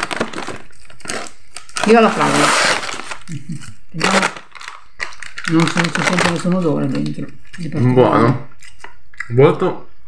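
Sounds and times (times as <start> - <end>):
candy packet crinkling: 0.0 - 7.9.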